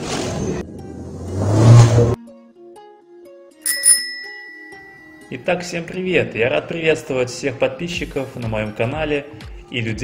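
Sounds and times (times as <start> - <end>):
soft background music: 2.2 - 10.0
bright bell-like ding: 3.7 - 5.4.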